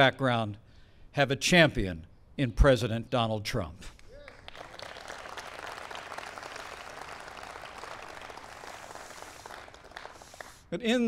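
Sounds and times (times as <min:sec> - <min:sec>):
audience applauding: 0:04.1 - 0:10.7.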